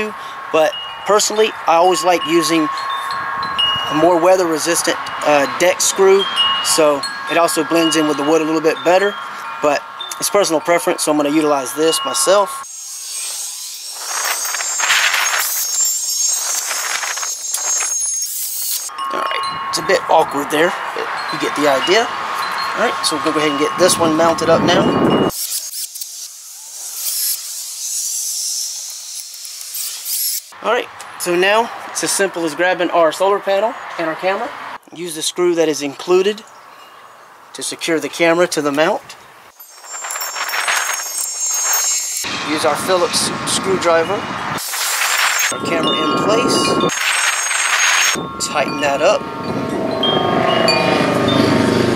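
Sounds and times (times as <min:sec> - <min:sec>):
faint high whine: 0:06.7 - 0:21.9, 0:39.6 - 0:51.9.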